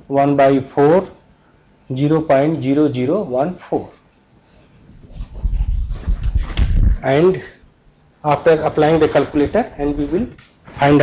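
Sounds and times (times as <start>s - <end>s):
microphone handling noise: 4.8s - 7.2s, 8.8s - 11.0s.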